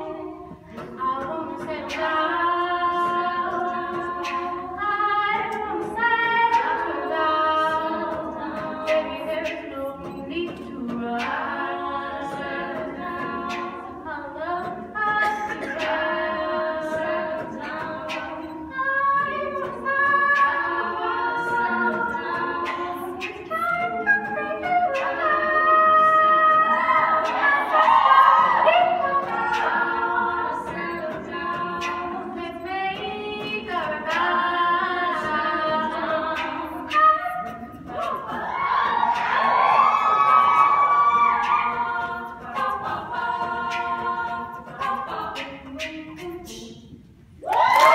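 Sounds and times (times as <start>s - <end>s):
a cappella group singing in harmony: 0.0s - 47.9s.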